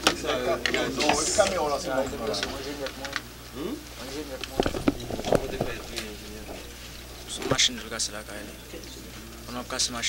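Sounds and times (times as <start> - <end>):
man speaking: 0.8 - 8.8
steady low hum: 0.9 - 10.0.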